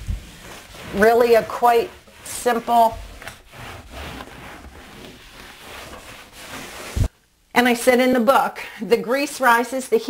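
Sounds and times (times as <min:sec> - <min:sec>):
cloth rag rubbing a wall: 0:00.0 - 0:07.1.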